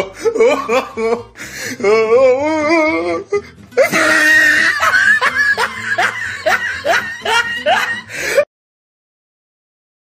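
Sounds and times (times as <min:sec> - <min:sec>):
snickering laughter: 0:00.0 - 0:01.3, 0:03.8 - 0:08.4.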